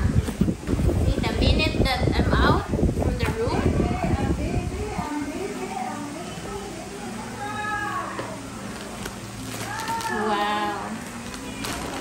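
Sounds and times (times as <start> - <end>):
plastic packaging crackling: 8.6 - 12.0.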